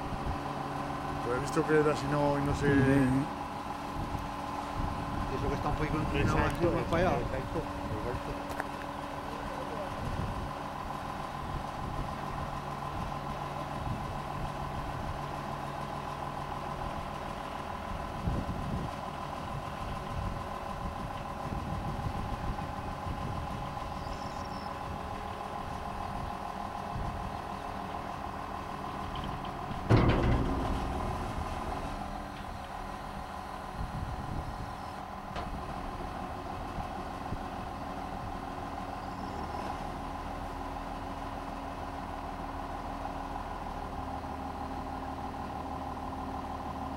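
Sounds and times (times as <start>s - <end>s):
tractor engine running: 0.0s - 46.9s
loud clunk: 29.1s - 32.8s.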